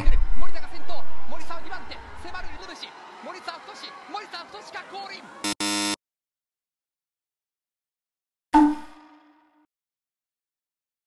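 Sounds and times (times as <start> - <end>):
wrong answer buzzer: 5.4 - 6.0.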